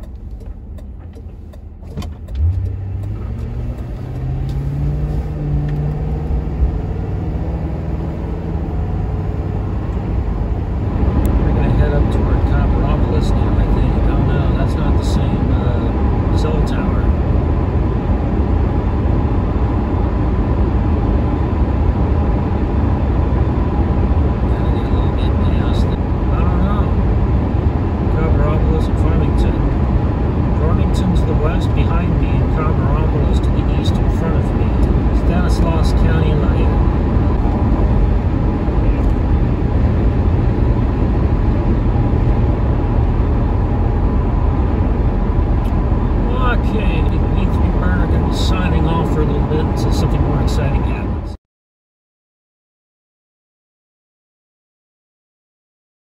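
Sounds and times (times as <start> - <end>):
car engine accelerating: 0.0 - 51.4.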